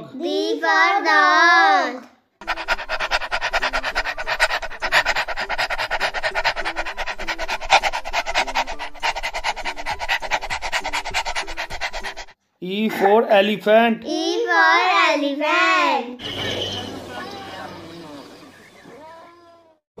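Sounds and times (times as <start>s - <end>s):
dog panting: 2.4s - 12.4s, 16.2s - 19.1s.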